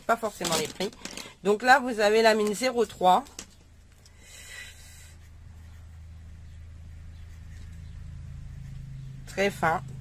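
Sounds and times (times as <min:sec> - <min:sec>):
steady low hum: 0:03.6 - 0:10.0
pen scratching on paper: 0:06.9 - 0:09.6.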